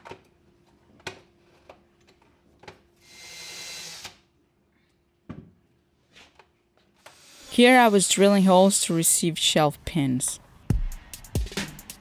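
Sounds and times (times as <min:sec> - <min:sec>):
cordless drill boring: 0:03.0 - 0:04.2, 0:07.1 - 0:07.6.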